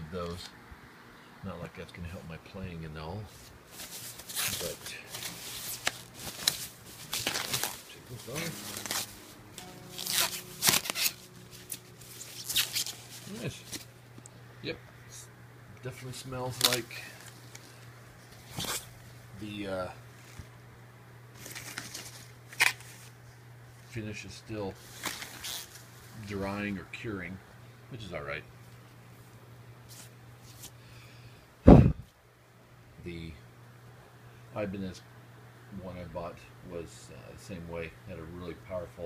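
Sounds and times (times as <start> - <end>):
steady low hum: 0.0 - 39.0
plastic sheet rustling and crinkling: 3.3 - 13.9, 16.5 - 17.7, 21.4 - 23.2.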